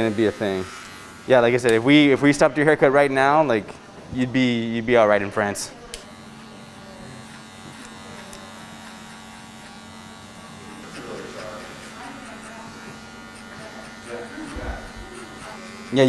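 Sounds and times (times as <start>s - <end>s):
electric hair clippers humming: 0.0s - 16.0s.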